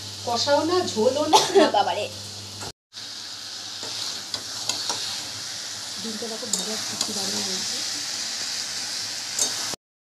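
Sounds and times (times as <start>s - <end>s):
food sizzling in a metal pan: 0.0s - 9.8s
spatula scraping and tapping pan: 3.8s - 5.3s, 6.4s - 7.4s, 9.4s - 9.8s.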